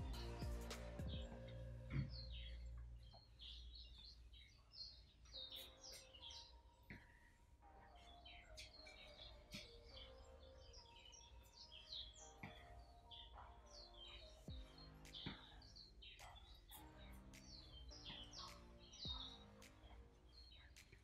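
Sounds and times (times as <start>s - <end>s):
faint bird chirps: 0.0s - 21.0s.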